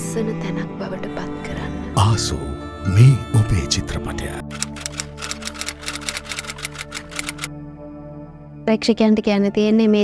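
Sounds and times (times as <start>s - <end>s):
background music with held notes: 0.0s - 10.0s
typewriter typing clicks: 4.5s - 7.5s.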